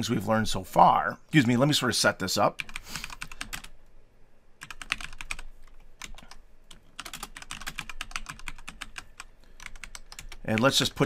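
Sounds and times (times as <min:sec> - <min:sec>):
computer keyboard typing: 0:02.6 - 0:03.8, 0:04.6 - 0:11.0.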